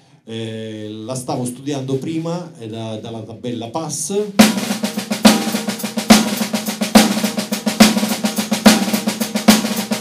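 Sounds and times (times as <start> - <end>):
snare drum strokes: 4.4 - 10.0.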